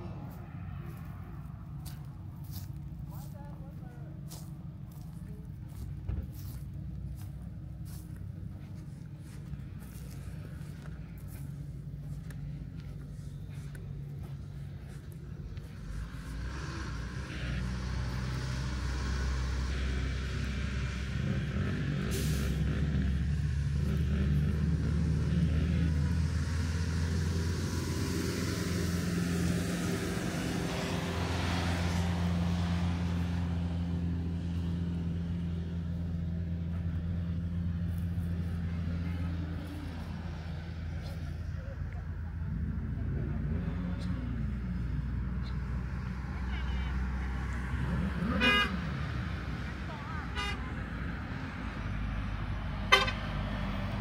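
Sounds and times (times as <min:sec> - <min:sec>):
vehicle engine running: 0:00.0 - 0:54.0.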